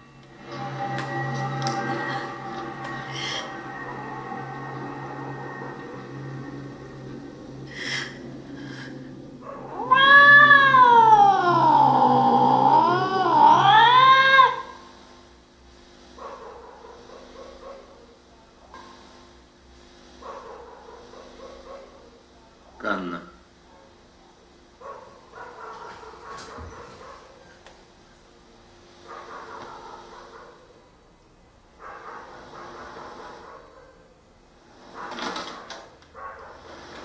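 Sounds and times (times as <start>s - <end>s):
steady low hum: 0.0s - 35.2s
cat yowling: 9.4s - 14.8s.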